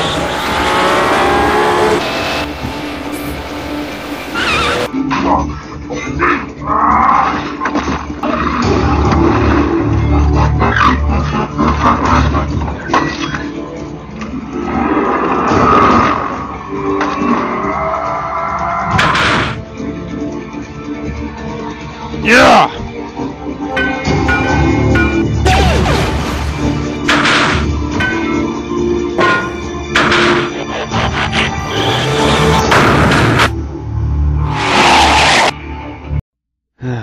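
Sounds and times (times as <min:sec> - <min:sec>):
action soundtrack music: 0:00.0 - 0:36.2.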